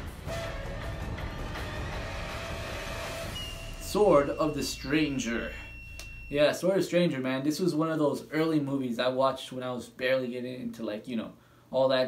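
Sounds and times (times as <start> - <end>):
faint held tones: 3.3 - 6.8.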